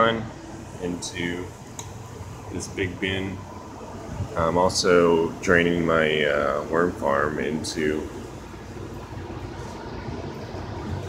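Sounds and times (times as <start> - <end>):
low hum with faint hiss: 0.0 - 11.0.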